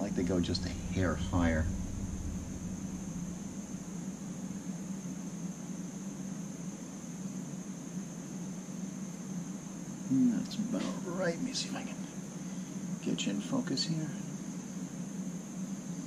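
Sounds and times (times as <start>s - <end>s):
low hum: 0.0s - 7.0s
even hiss: 0.0s - 16.0s
faint high-pitched whine: 0.0s - 16.0s.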